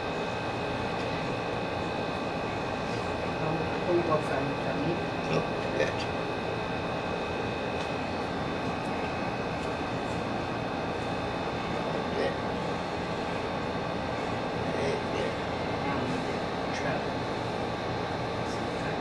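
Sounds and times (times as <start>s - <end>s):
machine hiss and hum: 0.0s - 19.0s.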